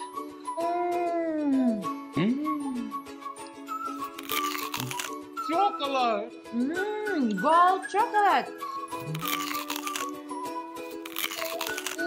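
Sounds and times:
background music: 0.0s - 12.0s
chocolate cracking and crunching: 4.0s - 5.2s, 9.0s - 10.2s, 10.8s - 12.0s.

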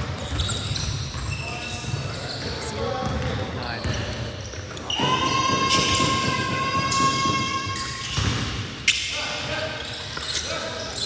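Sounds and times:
basketball bouncing on gym floor: 0.0s - 8.8s.

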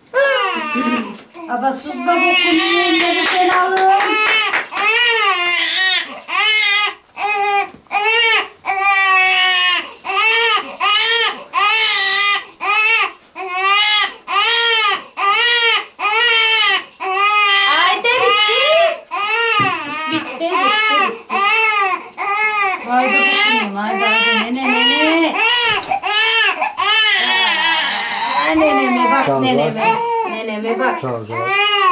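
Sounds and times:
newborn baby crying: 0.1s - 31.9s.

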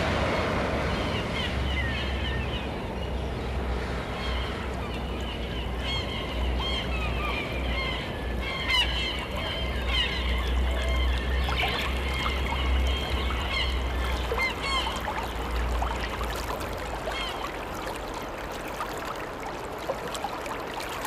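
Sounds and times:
birds chirping and honking: 5.4s - 15.8s.

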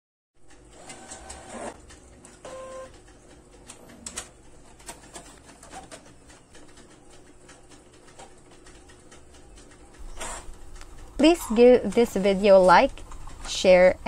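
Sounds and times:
printer motor tones: 0.7s - 1.8s, 2.4s - 3.0s, 10.0s - 10.5s.

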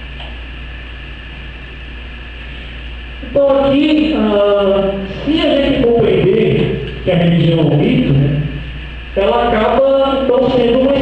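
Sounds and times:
sound system hum and hiss: 0.0s - 11.0s
voice through loudspeakers: 3.2s - 11.0s.

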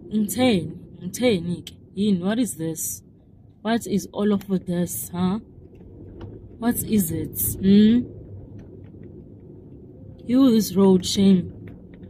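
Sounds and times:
car engine and tyre rumble: 0.0s - 12.0s.

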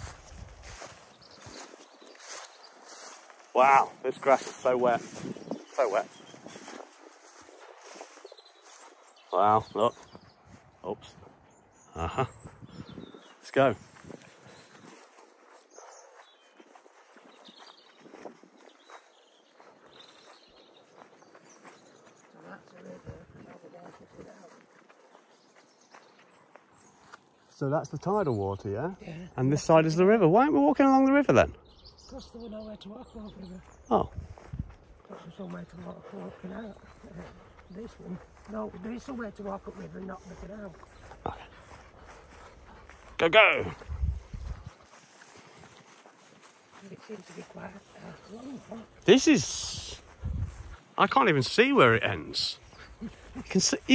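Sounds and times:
footsteps through wet grass: 0.0s - 27.7s, 29.6s - 53.9s.

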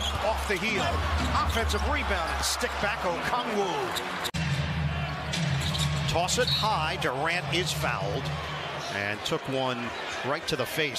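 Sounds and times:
crowd noise: 0.0s - 10.9s.

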